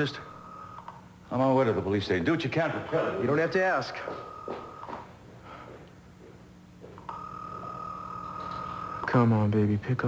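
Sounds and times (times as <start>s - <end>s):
telephone ringing tone beep: 0.0s - 1.0s, 4.2s - 5.0s, 7.0s - 9.3s.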